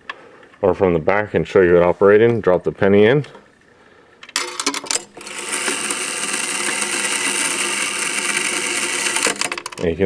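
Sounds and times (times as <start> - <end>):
gear mechanism whirring: 4.4 - 9.8.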